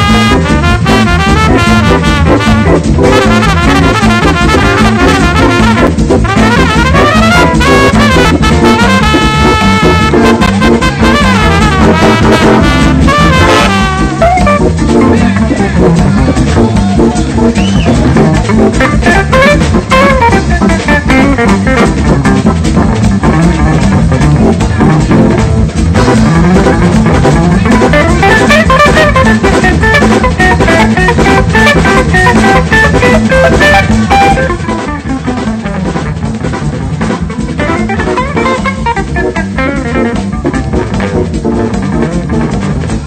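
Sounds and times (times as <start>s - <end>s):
jazz guitar drums and bass: 0.0s - 43.0s.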